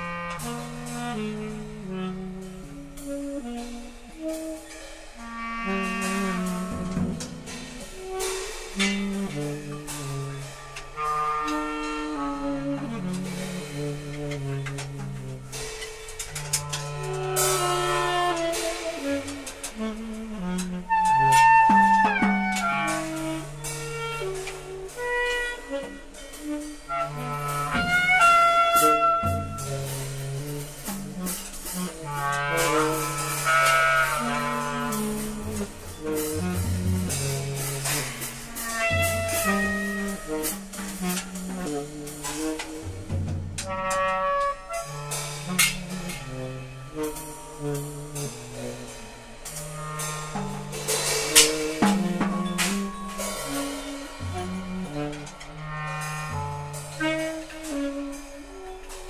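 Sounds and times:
clarinet: 0.0s - 59.0s
tenor saxophone: 0.0s - 59.0s
cymbal and drum hits: 44.6s - 59.0s.

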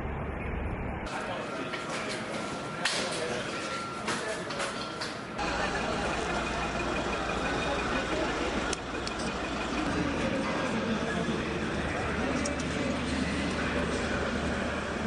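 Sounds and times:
steady low hum: 5.3s - 15.0s.

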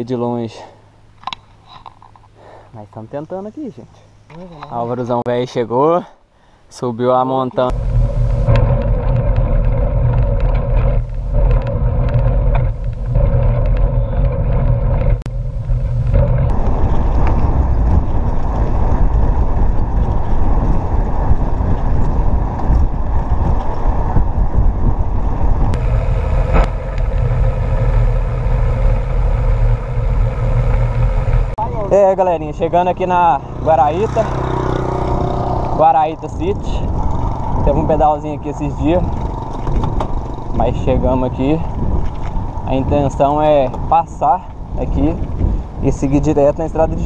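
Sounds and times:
faint hum: 7.7s - 16.7s, 25.8s - 31.6s
bike tyres rolling on asphalt: 7.7s - 31.6s, 35.4s - 47.0s
wind rushing over microphone: 7.7s - 47.0s.

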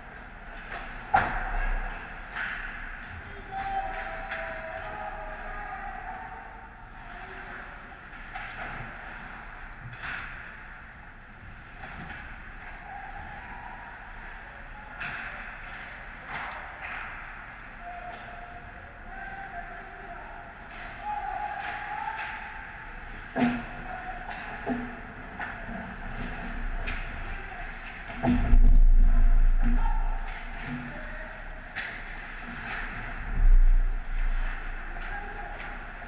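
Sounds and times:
hockey sticks and puck clacking: 0.5s - 5.0s, 14.9s - 17.5s, 20.7s - 28.6s, 29.6s - 33.2s, 34.2s - 36.0s
loud low rumble: 28.4s - 29.7s.

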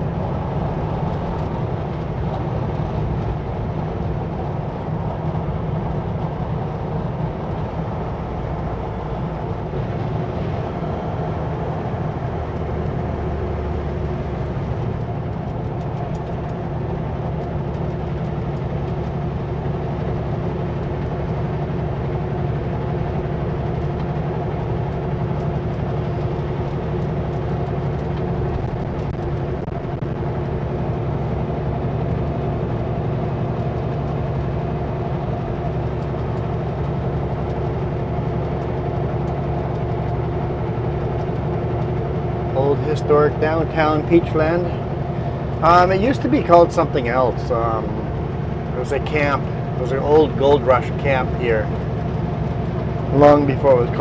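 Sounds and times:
road and tyre noise: 0.0s - 54.0s
truck engine drone: 0.0s - 54.0s.

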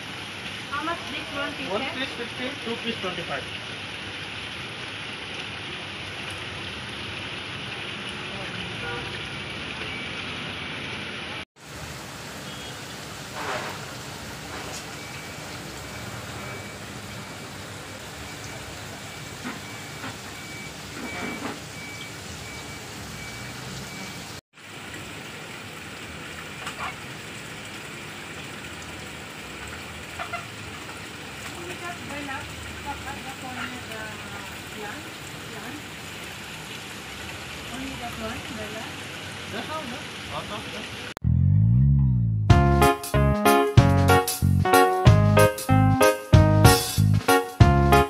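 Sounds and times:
aquarium water bubbling and splashing: 0.0s - 41.2s.

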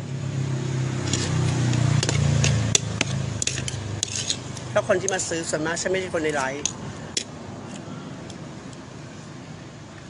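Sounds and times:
vehicle engine passing by: 0.0s - 7.7s.

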